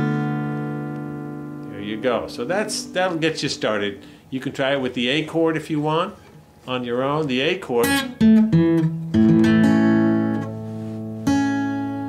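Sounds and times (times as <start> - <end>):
acoustic guitar chord strummed: 0.0 - 4.2, 7.3 - 12.0
acoustic guitar notes picked: 0.0 - 12.0.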